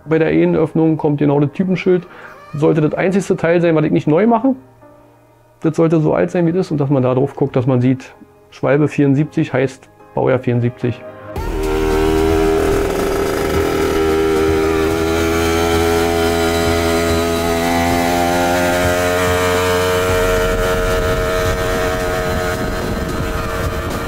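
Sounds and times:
moped engine running: 0:11.4 - 0:24.0.

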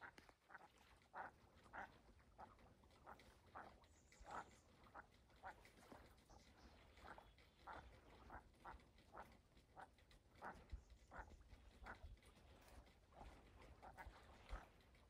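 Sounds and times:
ducks calling: 0:00.0 - 0:15.0.

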